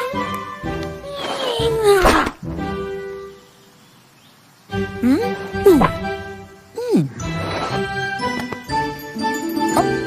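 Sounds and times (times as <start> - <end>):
orchestral music: 4.8 - 10.0.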